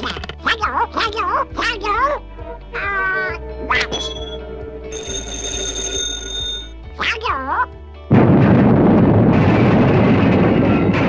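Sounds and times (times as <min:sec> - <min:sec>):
cartoon duck voice squawking: 0:00.0 - 0:04.1, 0:07.0 - 0:07.7
orchestral music: 0:00.8 - 0:08.1
high-pitched tone: 0:03.2 - 0:06.8.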